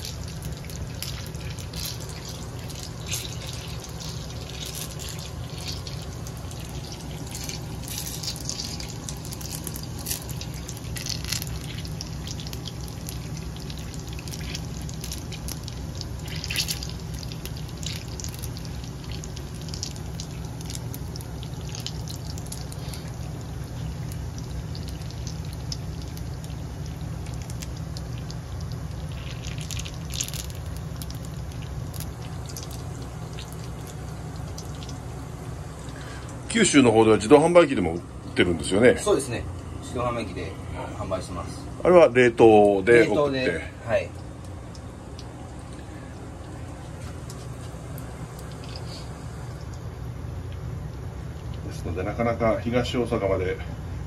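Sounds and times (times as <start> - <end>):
food deep-frying in hot oil: 0.0 - 37.7, 41.9 - 54.0
constant low hum: 0.0 - 54.0.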